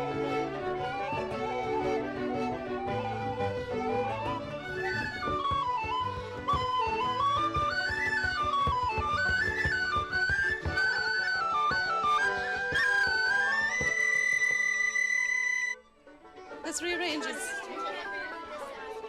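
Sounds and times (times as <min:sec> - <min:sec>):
tin whistles playing lively tune: 0:00.3 - 0:15.8.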